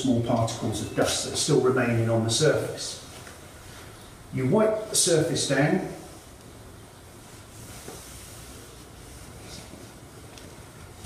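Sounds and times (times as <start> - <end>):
room noise hiss: 0.0 - 11.0
faint soft rustles: 7.1 - 11.0.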